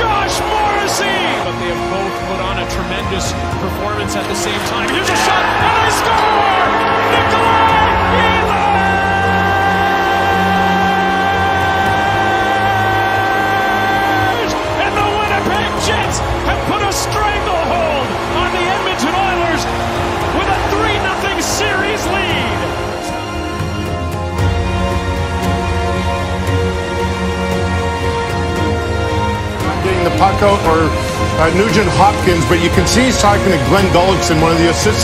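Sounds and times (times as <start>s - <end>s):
voices: 0.0s - 23.5s
music: 0.0s - 35.0s.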